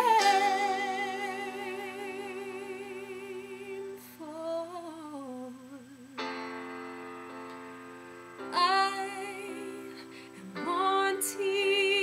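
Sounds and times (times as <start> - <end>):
sustained accompaniment chord: 6.0 - 12.0.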